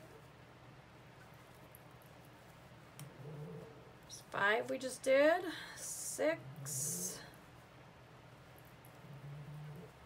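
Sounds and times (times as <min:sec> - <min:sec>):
soft low hum: 0:00.0 - 0:10.0.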